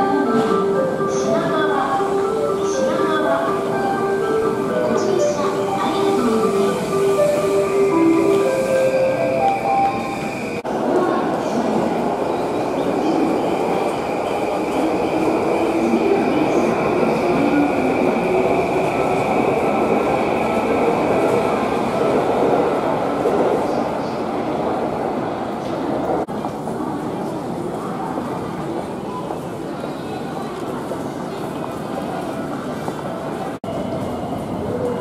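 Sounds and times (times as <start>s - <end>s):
train at platform din: 0.0s - 35.0s.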